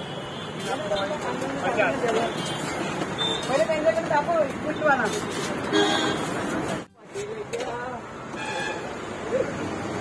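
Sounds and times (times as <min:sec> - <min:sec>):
street traffic noise: 0:00.0 - 0:10.0.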